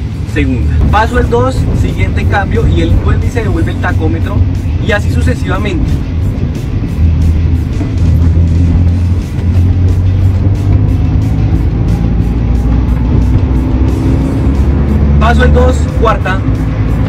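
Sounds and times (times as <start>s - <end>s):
background music: 0.0s - 17.0s
car engine revving: 0.0s - 17.0s.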